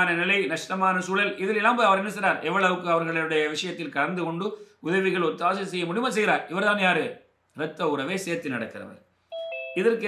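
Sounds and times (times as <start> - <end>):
person speaking: 0.0 - 10.0
electronic two-note chime: 9.3 - 10.0.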